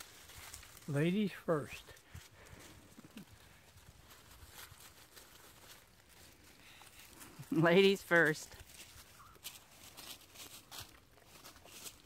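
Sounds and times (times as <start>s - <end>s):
faint ticks and rustles: 0.0s - 12.0s.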